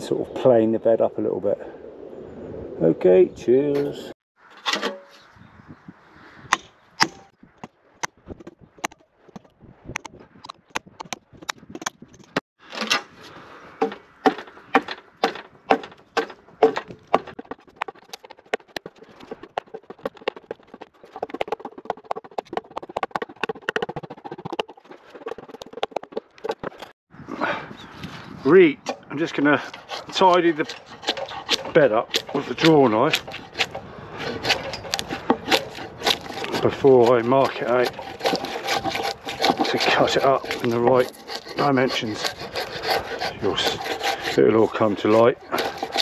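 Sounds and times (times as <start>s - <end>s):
hammer striking axe: 6.5s - 7.3s.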